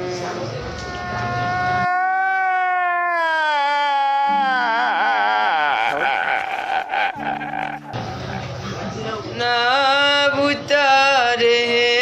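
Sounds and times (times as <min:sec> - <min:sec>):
man's long high wailing cry: 0:00.0 - 0:08.0.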